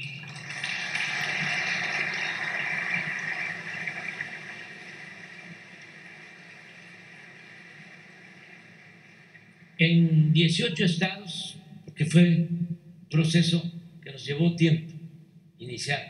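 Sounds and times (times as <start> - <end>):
audience applauding: 0.0 - 9.7.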